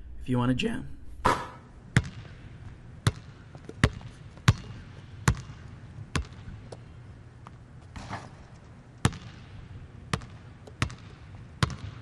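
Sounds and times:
basketball bouncing: 0:01.2 - 0:08.4, 0:09.0 - 0:12.0.

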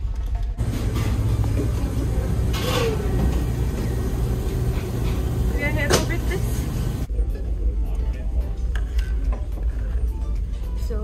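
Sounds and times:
background voices: 0:00.6 - 0:07.1
ship engines droning: 0:00.6 - 0:07.1.

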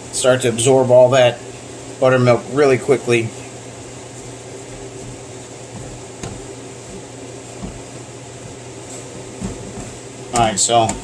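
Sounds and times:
low background hum: 0:00.0 - 0:11.0
spatula stirring dough in bowl: 0:03.8 - 0:11.0.

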